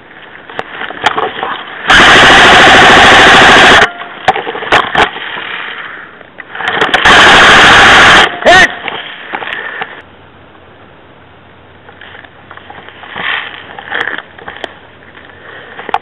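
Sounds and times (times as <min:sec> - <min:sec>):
airsoft rifle full-auto bursts: 0:01.9 - 0:03.9, 0:07.0 - 0:08.6.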